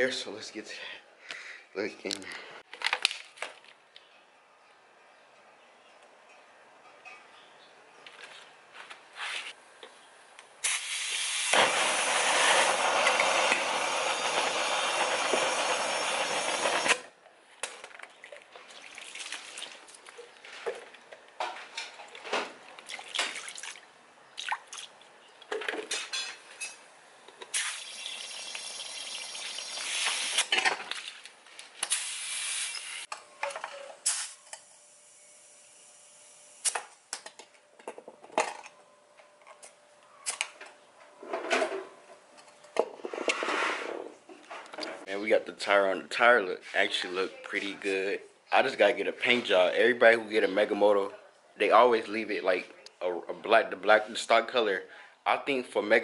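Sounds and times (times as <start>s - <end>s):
water dripping and splashing: 18.1s - 21.2s, 22.0s - 25.1s.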